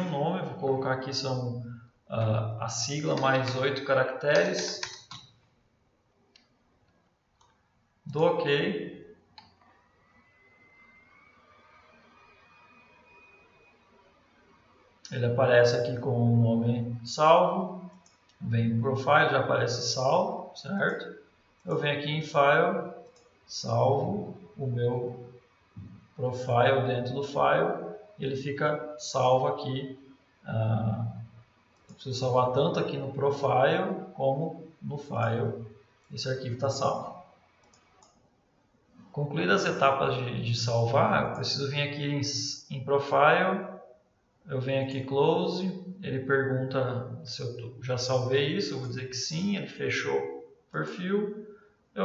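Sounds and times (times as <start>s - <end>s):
faint room hiss: 0.0s - 52.0s
faint computer mouse clicks: 37.6s - 38.2s.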